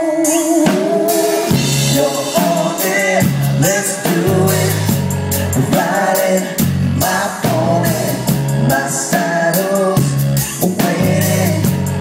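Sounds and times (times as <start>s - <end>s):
person singing: 0.0s - 5.0s, 5.6s - 12.0s
drum kit beat: 0.0s - 12.0s
electric guitar: 0.0s - 12.0s.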